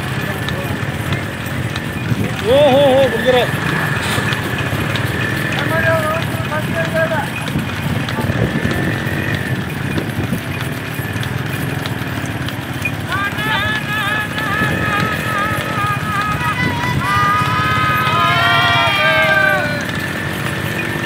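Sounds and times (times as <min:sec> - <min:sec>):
hooves clattering on tarmac: 0:00.0 - 0:21.0
motorcycle engines running: 0:00.0 - 0:21.0
people calling and shouting: 0:00.0 - 0:21.0
wavering high call: 0:13.0 - 0:20.3.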